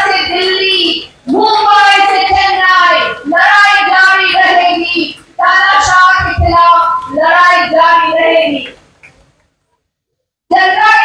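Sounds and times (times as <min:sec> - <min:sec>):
woman speaking into a microphone: 0:00.0 - 0:08.8.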